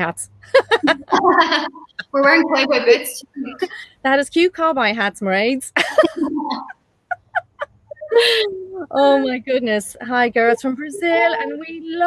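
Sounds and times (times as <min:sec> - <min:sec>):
women laughing: 0:00.4 - 0:03.8, 0:05.8 - 0:09.0.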